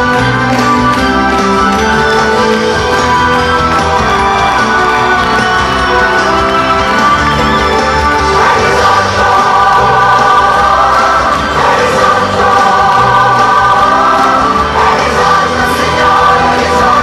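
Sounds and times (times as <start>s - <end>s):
instrumental accompaniment with bass: 0.0s - 17.0s
choir singing: 8.2s - 17.0s.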